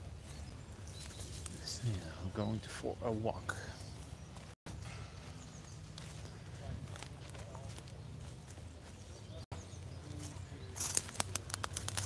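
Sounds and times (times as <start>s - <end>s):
footsteps on dry leaves and twigs: 0.0s - 2.6s, 3.4s - 12.0s.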